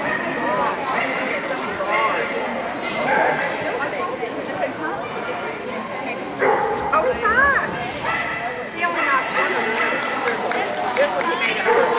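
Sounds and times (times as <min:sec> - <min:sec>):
people talking: 0:00.0 - 0:11.9.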